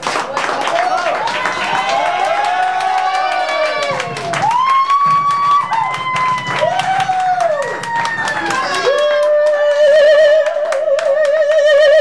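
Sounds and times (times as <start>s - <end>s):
crowd clapping and cheering: 0.0s - 12.0s.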